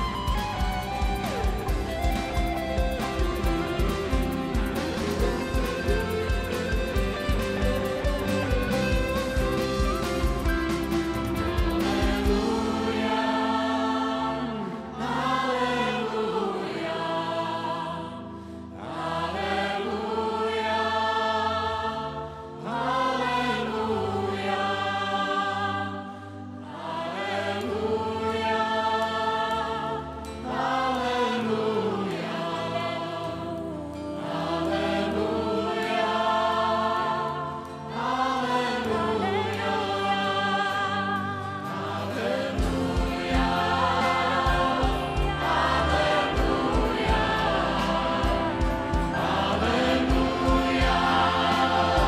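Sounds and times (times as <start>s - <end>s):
choir singing worship song: 0.0s - 52.0s.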